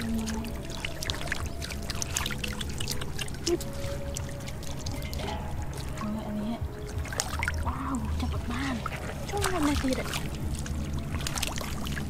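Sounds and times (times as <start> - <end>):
faint background music: 0.0 - 12.0
muddy water splashing: 0.0 - 12.0.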